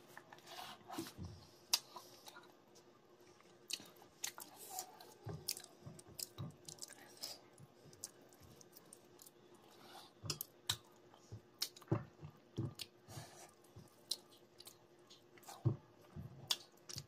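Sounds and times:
person chewing with wet mouth smacks: 3.6s - 9.4s, 10.3s - 13.0s, 16.5s - 17.0s.

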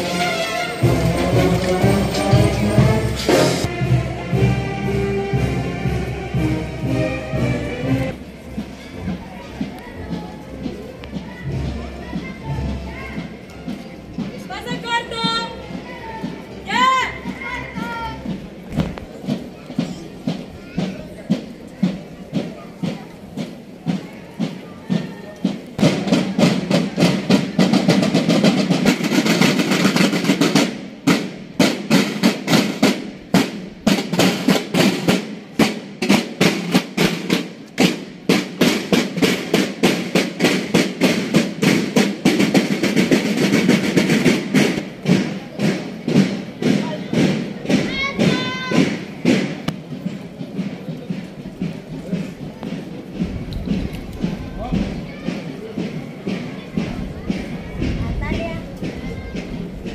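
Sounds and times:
marching snare and bass drums: 0.0s - 59.9s.

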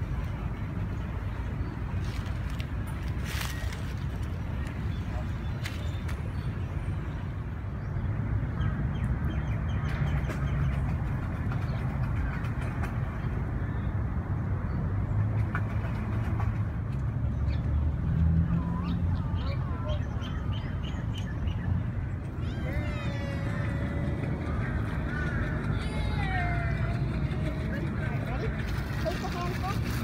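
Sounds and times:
steady low rumble: 21.7s - 30.0s
indistinct voices: 22.4s - 29.8s.

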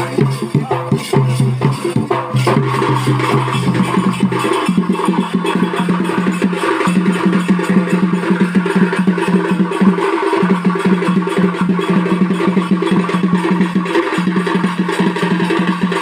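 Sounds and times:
barrel drums beaten with sticks: 0.0s - 16.0s.

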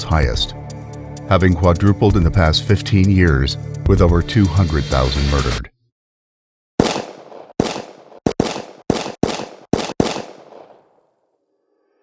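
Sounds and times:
gunshots with short echo: 6.8s - 11.0s.

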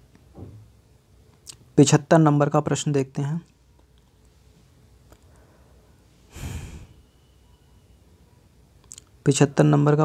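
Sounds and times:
short breath exhaled: 6.3s - 7.0s.

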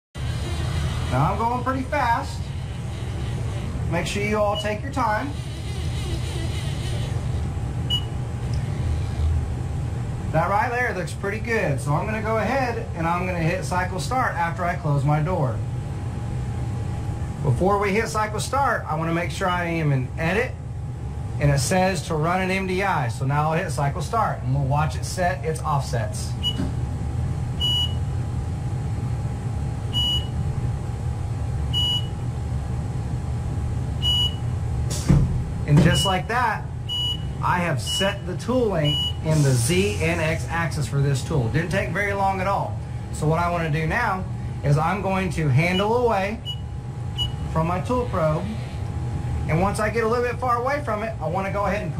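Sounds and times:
lathe humming and rumbling: 0.1s - 51.9s
short high-pitched beeps: 7.9s - 8.2s, 27.6s - 28.0s, 30.0s - 30.4s, 31.8s - 32.2s, 34.0s - 34.4s, 36.9s - 38.2s, 47.2s - 47.5s.

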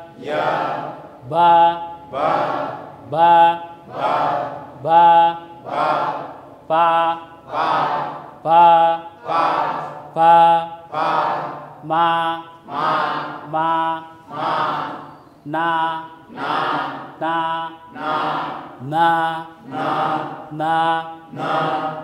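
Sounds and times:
man chanting syllables: 0.0s - 22.0s.

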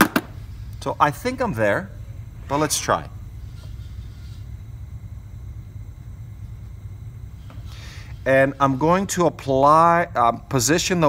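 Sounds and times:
low background rumble: 0.2s - 11.0s.

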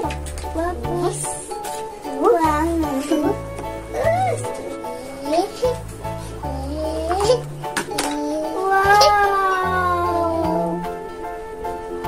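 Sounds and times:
cat meowing: 8.2s - 10.9s.

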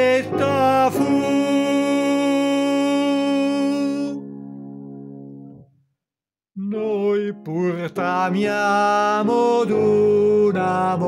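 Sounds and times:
man singing long note: 0.0s - 4.2s, 6.6s - 11.0s.

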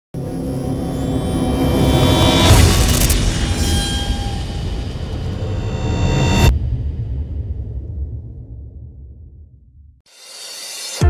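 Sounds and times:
low rumbling drone music: 0.2s - 9.6s.

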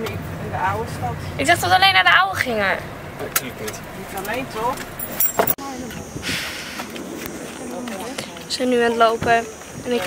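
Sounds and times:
open outdoor air: 0.0s - 10.0s
voices talking in a car: 0.0s - 10.0s.

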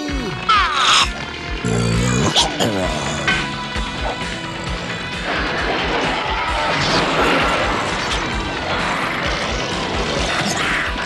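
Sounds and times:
dramatic background music: 0.0s - 11.0s
cartoon battle crashes: 5.1s - 11.0s.

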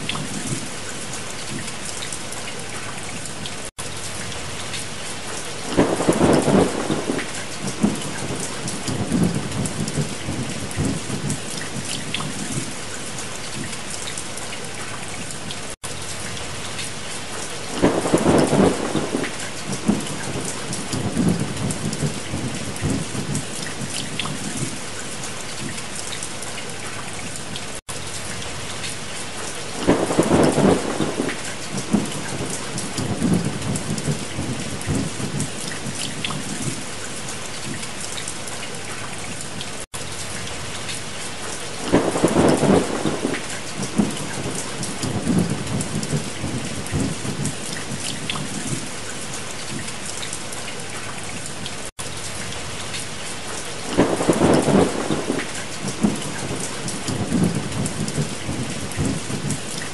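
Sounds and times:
steady rain: 0.0s - 59.9s
thunder rolling: 5.7s - 11.5s, 17.7s - 23.4s, 29.8s - 35.5s, 41.8s - 47.5s, 53.9s - 59.6s.

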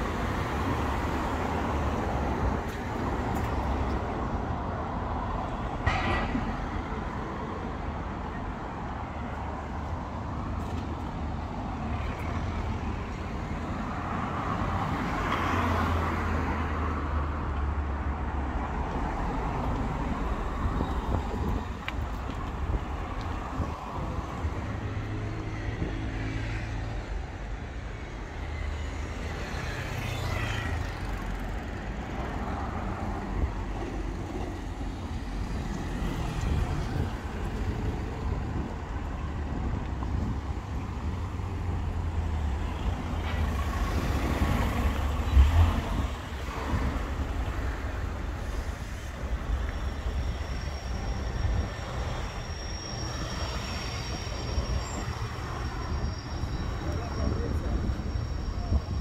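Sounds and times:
cars passing close by: 0.0s - 59.0s
traffic rumble: 0.0s - 59.0s.

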